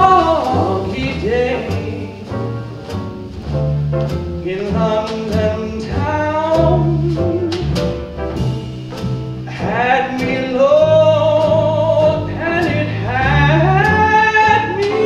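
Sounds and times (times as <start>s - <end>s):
person singing with vibrato: 0.0s - 2.6s, 4.4s - 7.8s, 9.4s - 15.0s
light drum kit: 0.0s - 15.0s
piano chords: 0.0s - 15.0s
plucked upright bass: 0.0s - 15.0s.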